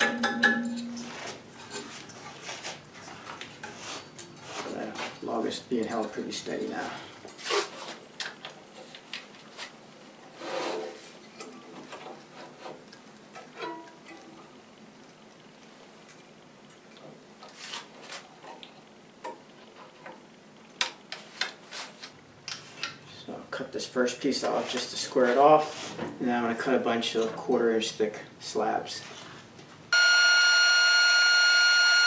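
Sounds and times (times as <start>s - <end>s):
rustling scrape: 1.0s - 5.4s, 6.7s - 8.1s, 8.7s - 12.8s, 17.4s - 18.3s, 21.2s - 22.8s, 24.4s - 26.1s, 29.0s - 29.6s.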